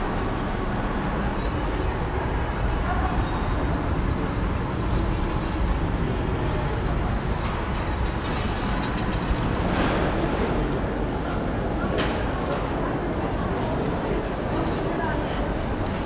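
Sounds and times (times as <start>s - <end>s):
faint murmur of voices: 0.0s - 16.0s
low indoor rumble: 0.0s - 16.0s.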